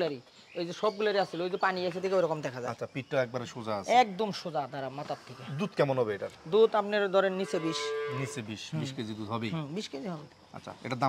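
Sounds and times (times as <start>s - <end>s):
cow mooing: 7.4s - 8.4s.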